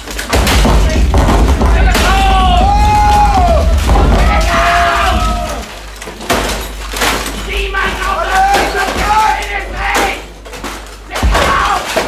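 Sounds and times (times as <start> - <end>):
knocks and clatters of bricks: 0.0 - 12.0.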